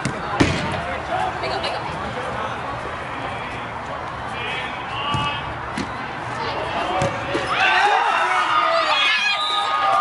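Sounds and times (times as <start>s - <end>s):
ball being kicked: 6.9s - 7.5s.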